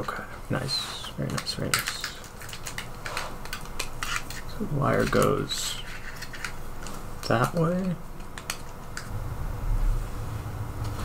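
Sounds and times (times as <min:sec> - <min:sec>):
plastic part clicking and rubbing: 0:01.2 - 0:06.6.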